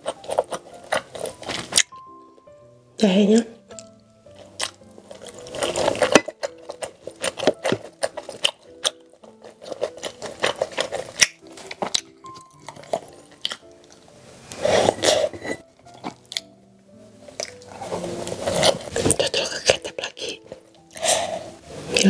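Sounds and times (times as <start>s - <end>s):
wet chewing: 0.0s - 2.6s, 3.6s - 22.0s
soft background music: 0.0s - 22.0s.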